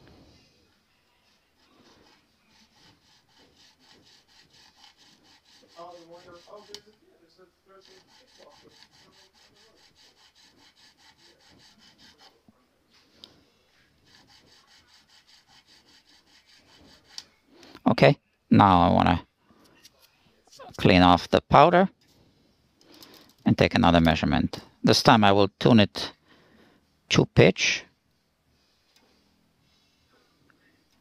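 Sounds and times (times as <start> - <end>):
nut file rasping: 1.5 - 7.0, 7.8 - 12.4, 14.0 - 17.4.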